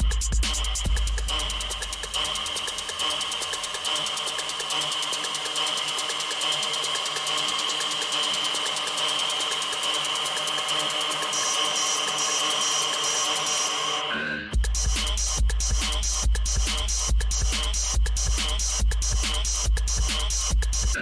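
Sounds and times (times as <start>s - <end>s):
buzzing synth pattern: 1.0s - 14.0s.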